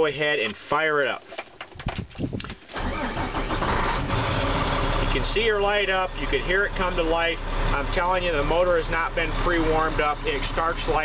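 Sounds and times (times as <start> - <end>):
diesel truck engine running: 2.8 - 11.0.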